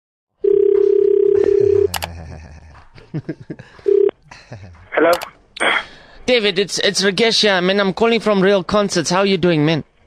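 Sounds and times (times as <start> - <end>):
telephone line tone: 0.4 - 2.0, 3.9 - 4.1
sharp click: 5.1 - 5.4.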